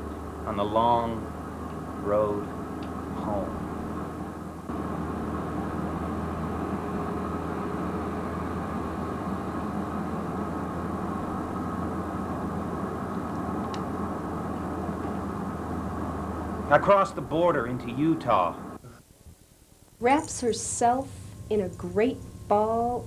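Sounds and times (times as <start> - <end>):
steady low rumble: 0.0 - 18.8
constant hum: 0.0 - 23.0.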